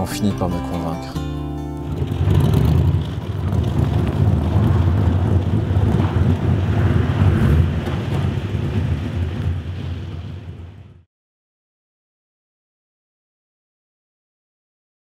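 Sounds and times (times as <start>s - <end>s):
car engine deep rumble: 0.0s - 11.0s.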